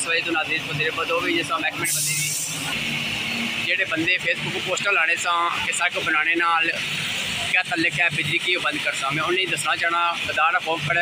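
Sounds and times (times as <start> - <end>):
man talking: 0.0 - 2.5, 3.6 - 6.8, 7.4 - 11.0
diesel truck engine running: 0.0 - 11.0.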